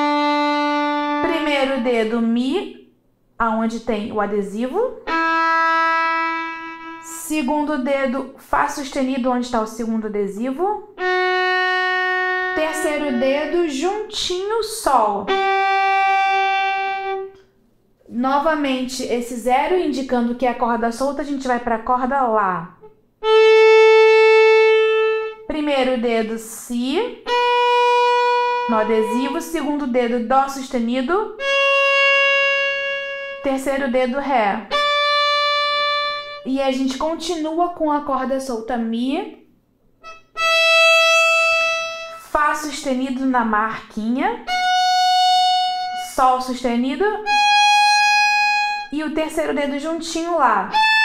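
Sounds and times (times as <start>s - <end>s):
violin bowed note: 0.0s - 1.9s, 5.0s - 7.8s, 10.9s - 14.2s, 15.0s - 17.5s, 22.8s - 25.5s, 27.2s - 29.9s, 31.4s - 33.8s, 34.6s - 36.5s, 40.0s - 42.3s, 44.4s - 46.5s, 47.2s - 49.0s, 50.7s - 51.0s.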